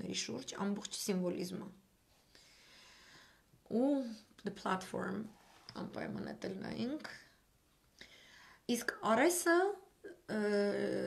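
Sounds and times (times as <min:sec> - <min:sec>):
woman speaking: 0:00.0 - 0:01.8, 0:03.7 - 0:07.4, 0:08.7 - 0:11.0.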